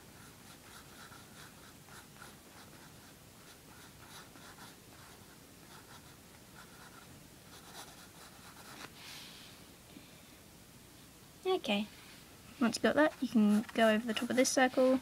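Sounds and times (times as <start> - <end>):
pencil scratching on paper: 0.1 - 8.8, 12.8 - 15.0.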